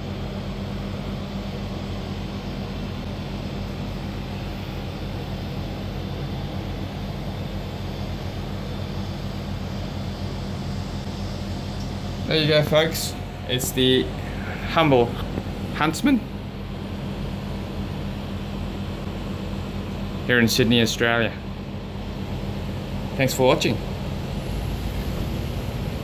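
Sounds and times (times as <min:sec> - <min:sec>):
low machine hum: 0:00.0 - 0:26.0.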